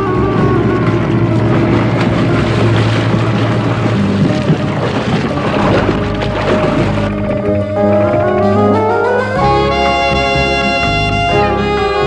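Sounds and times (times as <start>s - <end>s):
cartoon outboard motor running: 0.0s - 12.0s.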